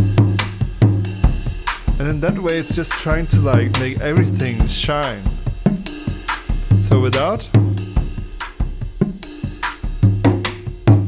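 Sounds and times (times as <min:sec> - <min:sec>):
cymbals: 0:00.0 - 0:11.0
held low bass note: 0:03.1 - 0:05.4.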